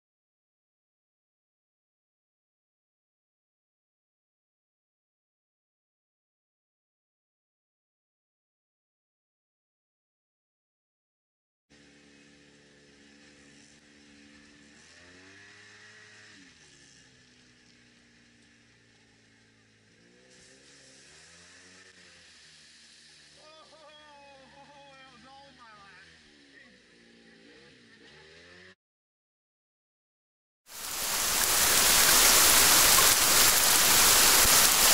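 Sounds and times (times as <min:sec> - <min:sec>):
faint engine revving: 0:11.7 - 0:28.8
steady rushing hiss: 0:30.7 - 0:34.9.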